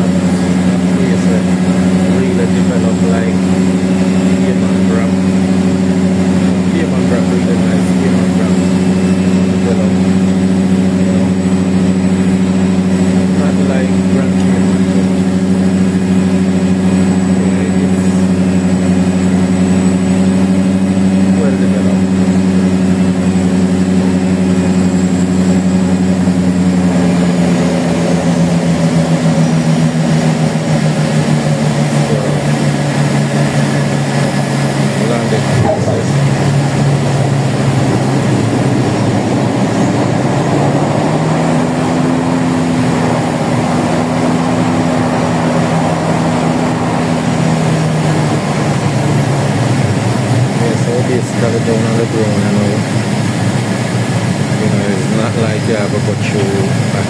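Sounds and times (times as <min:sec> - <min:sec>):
propeller aircraft cabin drone: 0:00.0 - 0:57.0.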